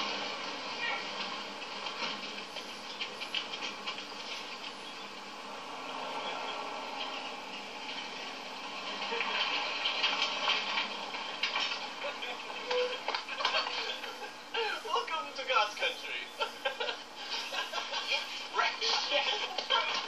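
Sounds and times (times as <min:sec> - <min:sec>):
trucks passing on road: 0:00.0 - 0:15.0.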